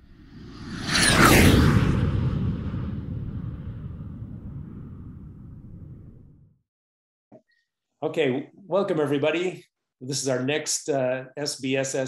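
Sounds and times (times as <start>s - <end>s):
whoosh with falling sweep: 0.0s - 6.4s
low rumbling tail: 0.0s - 6.6s.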